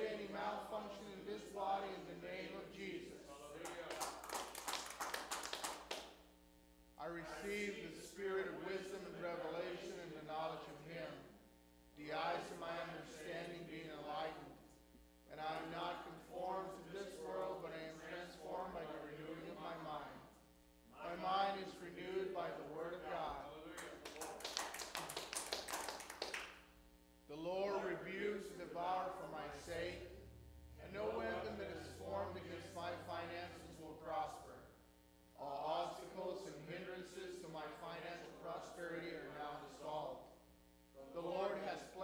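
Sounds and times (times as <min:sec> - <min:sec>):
man talking: 0:00.0 - 0:04.2, 0:07.0 - 0:11.3, 0:12.0 - 0:14.6, 0:15.3 - 0:20.2, 0:20.9 - 0:24.6, 0:27.3 - 0:34.7, 0:35.4 - 0:40.3, 0:41.0 - 0:42.0
hands clapping: 0:03.6 - 0:06.2, 0:23.8 - 0:26.7.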